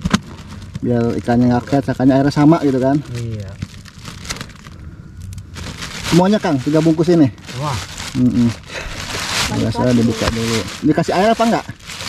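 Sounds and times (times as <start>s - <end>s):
plastic bag crinkling: 0.0s - 12.0s.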